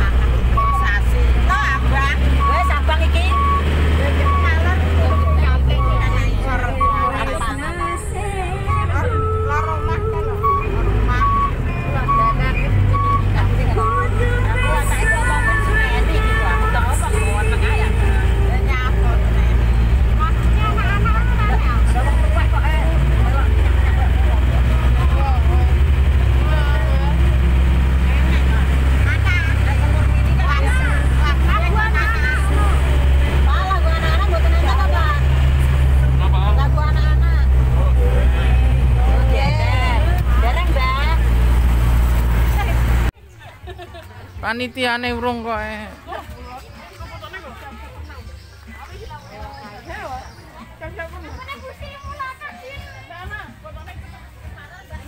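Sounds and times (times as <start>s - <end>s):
passengers' voices: 0.0s - 44.2s
engine low rumble: 0.0s - 55.0s
repeating electronic beep: 2.4s - 8.0s, 8.7s - 14.2s.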